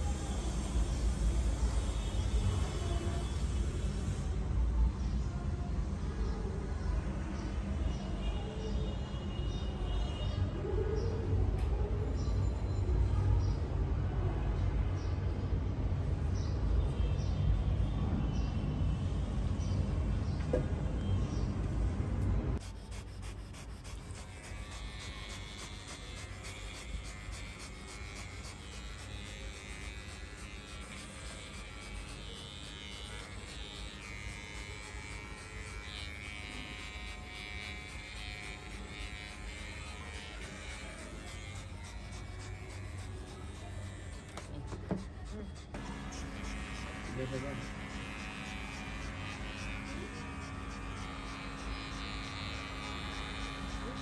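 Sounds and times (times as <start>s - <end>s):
electric clipper humming: 22.9s - 44.8s, 45.7s - 54.0s.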